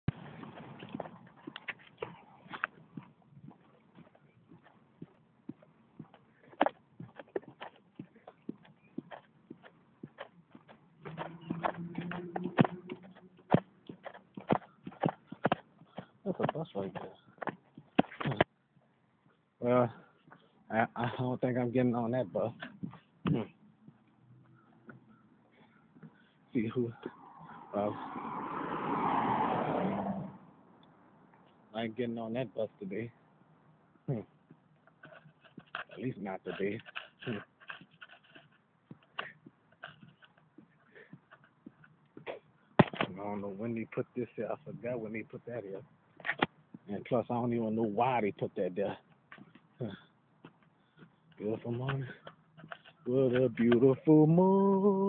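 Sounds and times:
footsteps on concrete: 0.1s - 19.4s, 22.5s - 25.2s, 49.0s - 53.9s
vehicle driving past: 11.0s - 14.0s, 26.8s - 31.3s
soft rushing noise: 26.8s - 30.5s.

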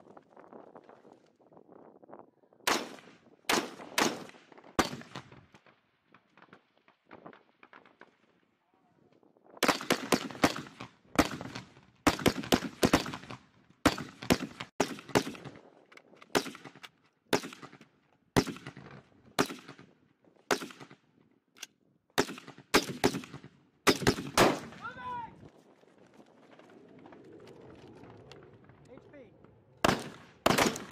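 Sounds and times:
rifle shots: 2.7s - 5.4s, 9.6s - 15.6s, 16.3s - 17.8s, 18.4s - 19.9s, 20.5s - 21.0s, 22.2s - 25.0s, 29.8s - 30.9s.

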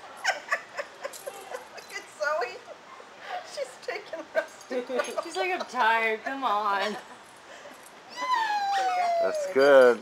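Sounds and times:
puppy whining: 8.1s - 9.6s.

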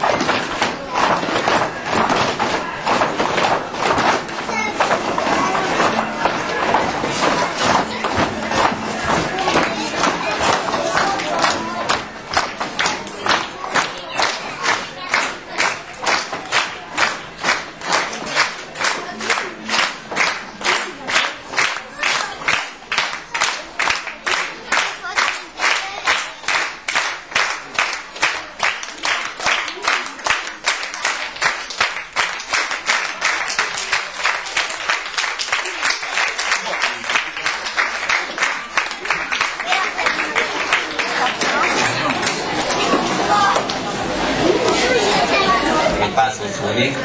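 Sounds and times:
audience clapping in unison: 0.0s - 43.8s.

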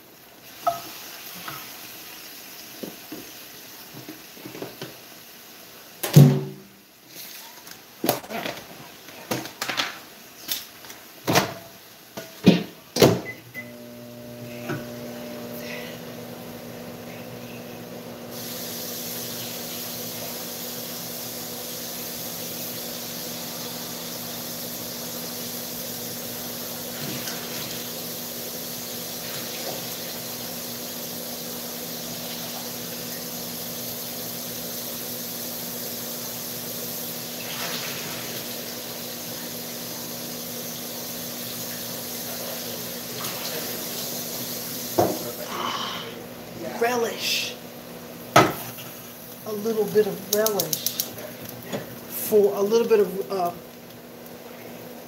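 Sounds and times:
microwave oven humming: 13.0s - 55.0s.

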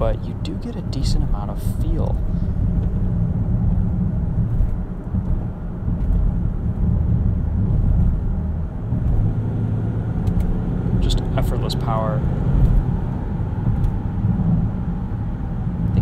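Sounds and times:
engine drone inside car cabin: 0.0s - 16.0s
road noise: 0.0s - 16.0s.

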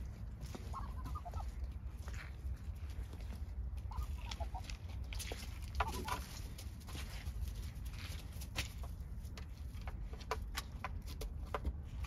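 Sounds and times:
ducks calling softly: 0.0s - 7.2s
steady low rumble: 0.0s - 12.0s.

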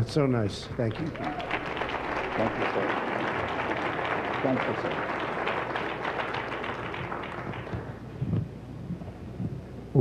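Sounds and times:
congregation applauding: 0.6s - 8.0s.

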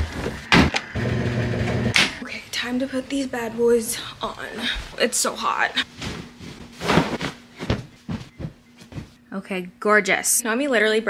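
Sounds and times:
washing machine humming: 0.0s - 2.2s.

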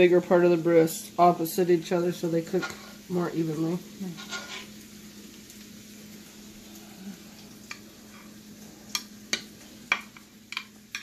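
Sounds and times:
food sizzling in a pan: 0.0s - 11.0s.

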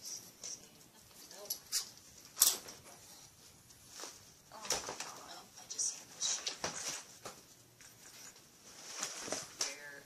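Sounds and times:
items rustling and clattering: 0.3s - 10.0s.

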